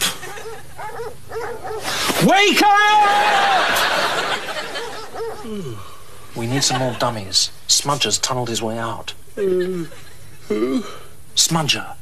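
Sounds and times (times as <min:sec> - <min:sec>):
man making high-pitched wordless sounds: 0:09.3 - 0:10.9.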